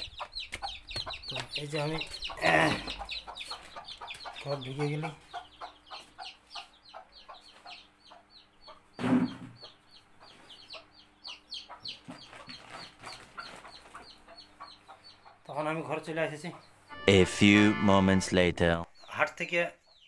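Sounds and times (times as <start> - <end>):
chickens clucking: 0.0 - 17.2
high falling chirps: 16.9 - 19.0.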